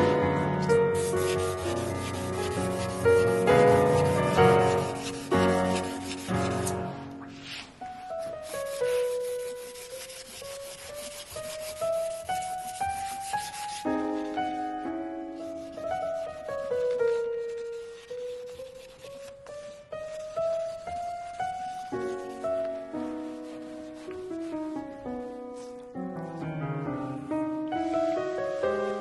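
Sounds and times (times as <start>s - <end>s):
soft piano music: 0.0s - 29.0s
hands rubbing hard surface: 0.6s - 13.8s.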